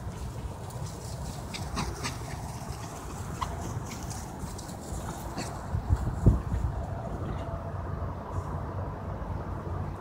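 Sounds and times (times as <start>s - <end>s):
dogs running on grass: 0.0s - 7.4s
wind rumble: 0.0s - 10.0s.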